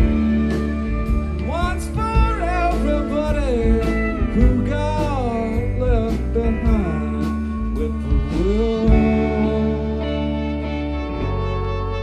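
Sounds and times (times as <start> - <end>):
gliding lead guitar line: 0.0 - 12.0
live rock band playing: 0.0 - 12.0.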